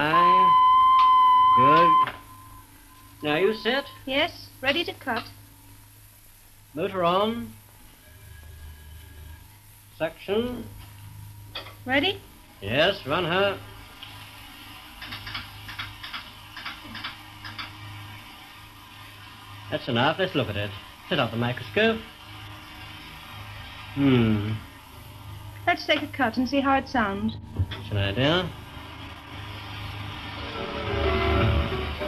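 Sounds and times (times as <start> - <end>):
faint steady high tone: 0.0 - 4.1
faint low motor hum: 0.0 - 32.0
steady hiss: 0.0 - 32.0.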